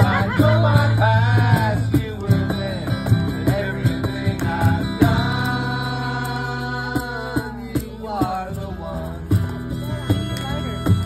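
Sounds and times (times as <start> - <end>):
men singing: 0.0 - 10.2
acoustic guitar strumming: 0.0 - 11.0.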